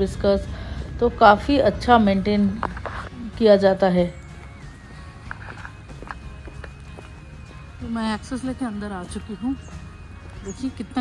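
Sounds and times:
sandal footsteps on concrete: 4.2 - 8.0.

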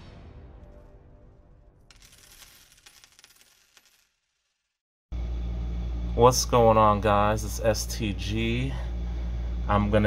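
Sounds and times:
coins clinking and jingling: 1.9 - 4.8.

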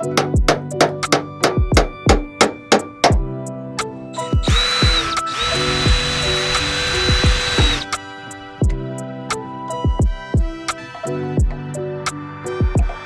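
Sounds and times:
music with drum beat: 0.0 - 8.0, 8.6 - 9.0, 9.7 - 11.8, 12.6 - 13.0
power drill whining: 4.4 - 7.9.

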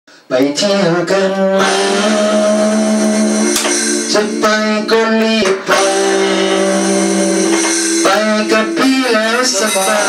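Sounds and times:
small live band playing: 0.4 - 10.0.

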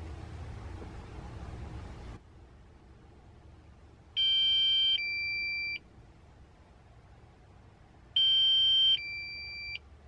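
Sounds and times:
two-part electronic warning beep: 4.2 - 5.8, 8.2 - 9.8.

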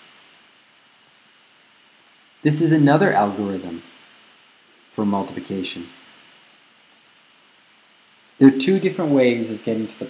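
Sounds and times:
faint hiss of microphone noise: 0.0 - 10.0.

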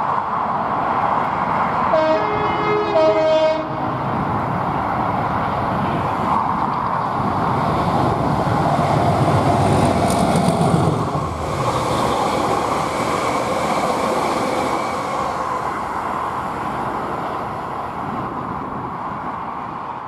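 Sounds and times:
diesel locomotive engine: 0.0 - 20.0
rumble of passing train: 0.0 - 20.0
locomotive horn note: 1.9 - 3.9
hauled vehicles rushing by: 7.1 - 17.9.

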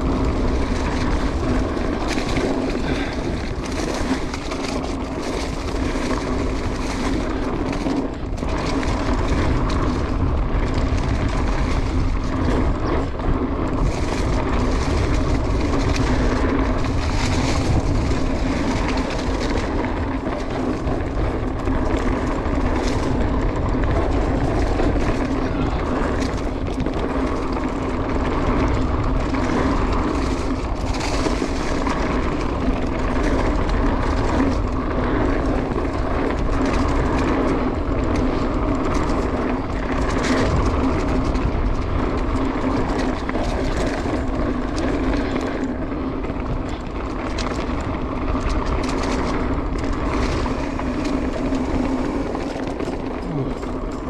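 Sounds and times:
bike clicking and rattling: 0.0 - 54.0
knobby tyres rolling on dirt: 0.0 - 54.0
wind rush on microphone: 0.0 - 54.0.

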